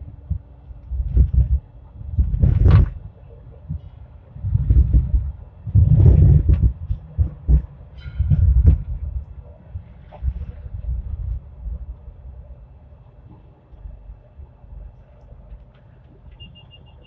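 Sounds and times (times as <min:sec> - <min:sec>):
light rail car rumbling on track: 0:00.0 - 0:17.0.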